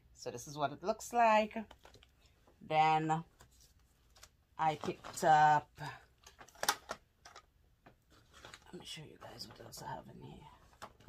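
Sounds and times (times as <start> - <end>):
small packaged items clicking together: 6.2 - 7.5.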